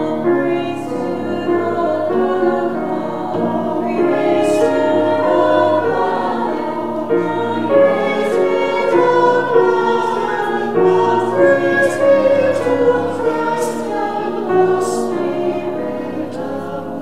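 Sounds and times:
choir singing a sacred song: 0:00.0 - 0:17.0.

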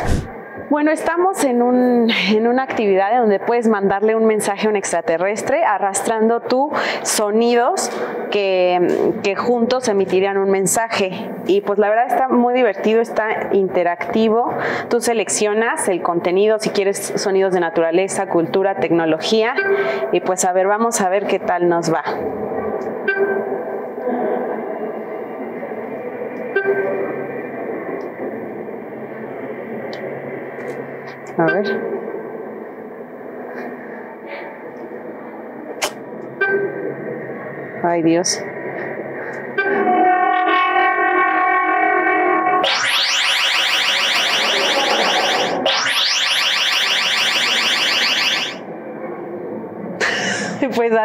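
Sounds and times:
mixed sound clips through speakers: 0:00.0 - 0:01.4
steady held electronic tone: 0:42.6 - 0:48.7.

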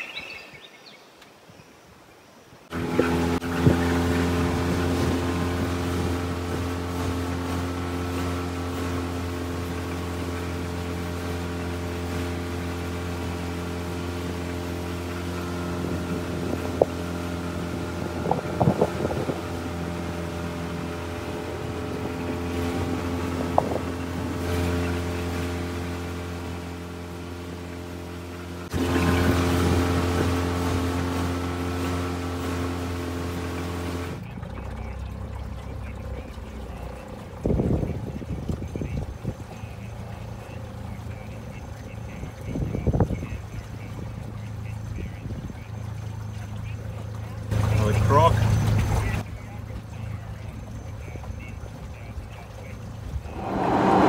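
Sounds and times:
water rushing along hull: 0:00.0 - 0:54.0
outboard motor running: 0:02.7 - 0:54.0.

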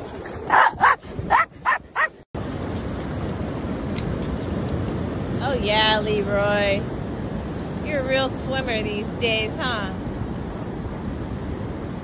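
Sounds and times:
small dog barking: 0:00.5 - 0:02.1.

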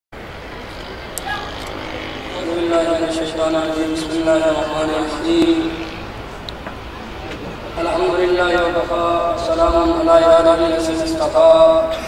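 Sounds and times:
background noise of gathering: 0:00.2 - 0:12.0
faint voices: 0:00.5 - 0:12.0.

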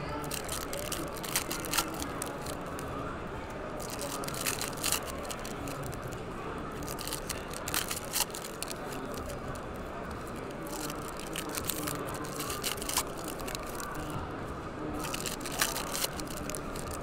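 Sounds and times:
murmur of voices: 0:00.0 - 0:17.0
foil wrappers crinkling and tearing: 0:00.1 - 0:02.8, 0:03.8 - 0:06.2, 0:06.8 - 0:09.4, 0:10.3 - 0:14.1, 0:15.0 - 0:17.0.

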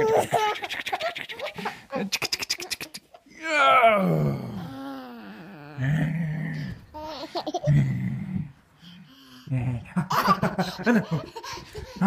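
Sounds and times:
man growling playfully: 0:03.4 - 0:06.9, 0:07.6 - 0:08.6.

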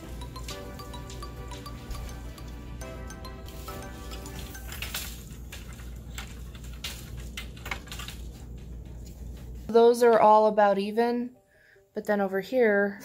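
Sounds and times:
soft plucked background music: 0:00.0 - 0:06.0.

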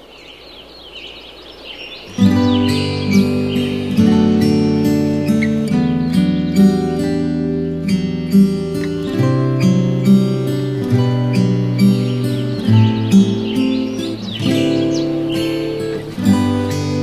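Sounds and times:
birds chirping: 0:00.0 - 0:17.0
strummed acoustic guitar tune: 0:02.1 - 0:17.0.

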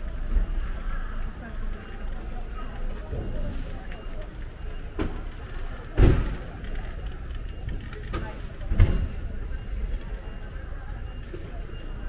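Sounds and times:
voices of passers-by: 0:00.0 - 0:12.0.

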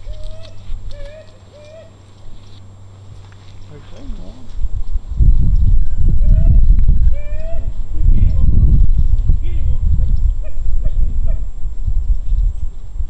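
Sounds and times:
loud low rumble: 0:03.7 - 0:13.0.

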